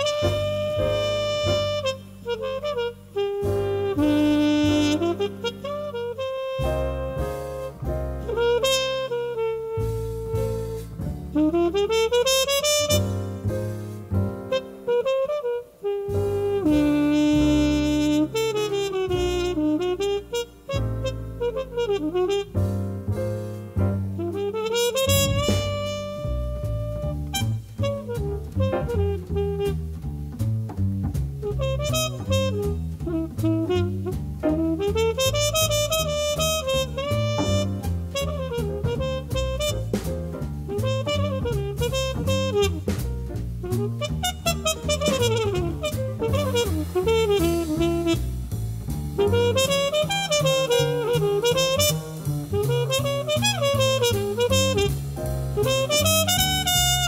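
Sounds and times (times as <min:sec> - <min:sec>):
trumpet melody: 0:00.0 - 0:30.1, 0:31.4 - 0:57.0
piano: 0:00.0 - 0:57.0
soft drums: 0:00.0 - 0:57.0
walking double bass: 0:00.0 - 0:57.0.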